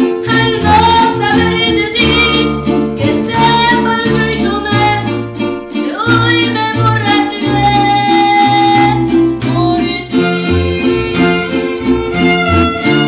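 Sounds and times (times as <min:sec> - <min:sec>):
guitars strummed: 0:00.0 - 0:13.0
woman singing: 0:00.2 - 0:13.0.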